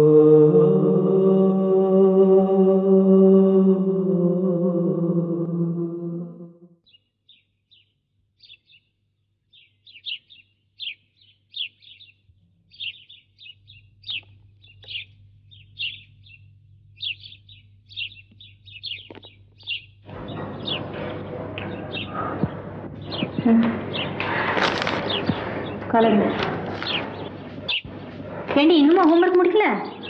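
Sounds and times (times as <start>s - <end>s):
sung chant: 0.0s - 6.6s
small birds chirping: 6.8s - 30.0s
rushing background noise: 20.1s - 30.0s.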